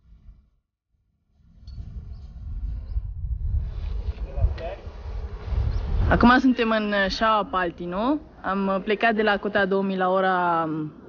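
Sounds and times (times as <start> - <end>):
wind buffeting microphone: 1.4 - 9.6.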